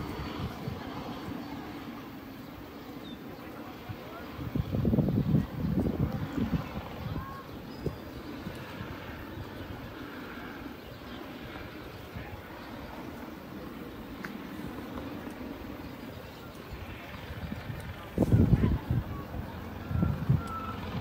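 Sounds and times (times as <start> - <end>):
helicopter drone overhead: 0.0 - 21.0.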